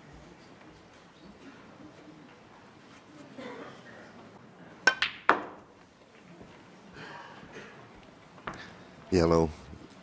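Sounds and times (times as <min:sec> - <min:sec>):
ball dropping into pocket: 0:04.9 - 0:05.6
snooker balls clicking: 0:04.9 - 0:05.6.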